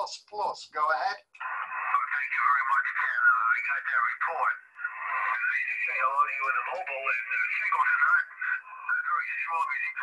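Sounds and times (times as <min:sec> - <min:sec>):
man's voice over radio speaker: 0:00.0 - 0:10.0.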